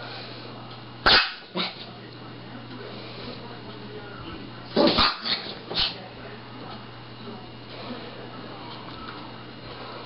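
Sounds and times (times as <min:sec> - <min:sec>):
small dog barking: 0:01.0 - 0:01.8, 0:04.8 - 0:05.9.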